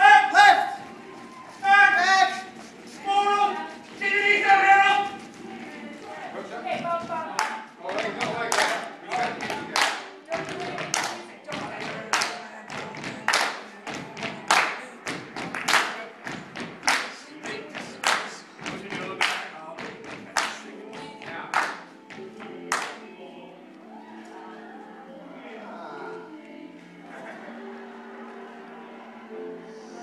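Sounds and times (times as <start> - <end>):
voices singing or chanting: 0.0 - 30.0
group clapping and stamping: 6.7 - 23.0.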